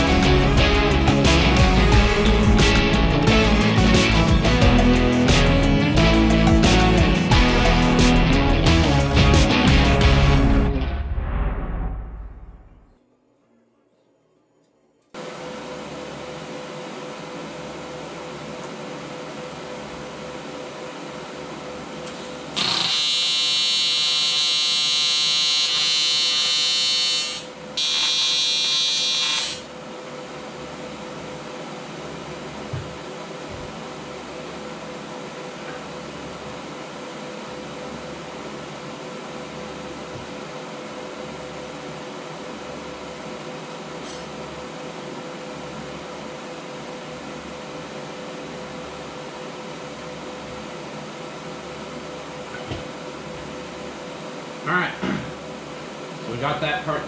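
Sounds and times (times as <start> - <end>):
machine hum: 0.0 - 57.0
welding arc buzzing: 22.0 - 29.7.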